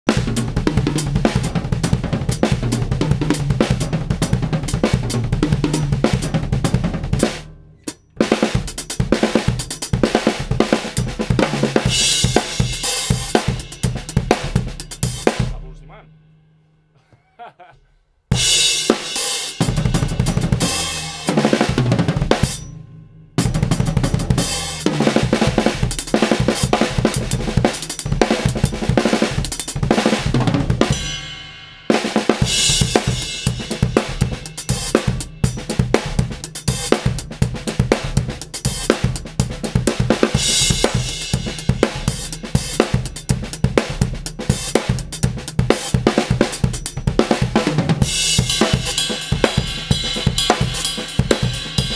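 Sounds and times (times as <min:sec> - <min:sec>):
acoustic drum kit fills: 0:00.1 - 0:16.0, 0:18.3 - 0:51.9.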